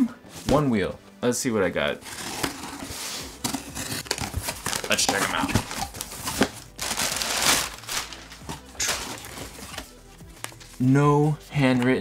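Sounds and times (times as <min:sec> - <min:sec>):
paper rustling: 0:02.1 - 0:12.0.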